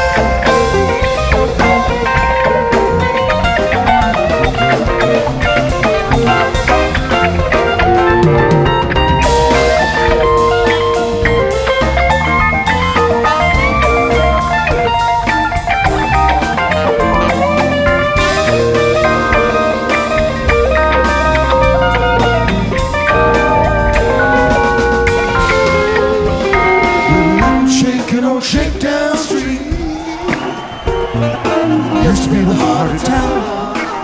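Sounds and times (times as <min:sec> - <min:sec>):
drum kit: 0:00.0 - 0:34.0
electric guitar: 0:00.0 - 0:34.0
live rock band playing: 0:00.0 - 0:34.0.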